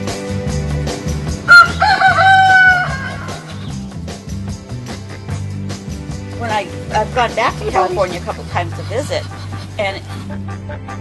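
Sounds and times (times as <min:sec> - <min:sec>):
background music with steady beat: 0:00.0 - 0:11.0
rooster crowing: 0:01.5 - 0:03.5.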